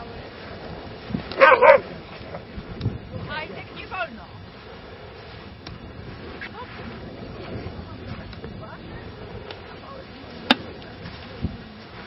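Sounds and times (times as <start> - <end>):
dog barking: 1.4 - 1.9.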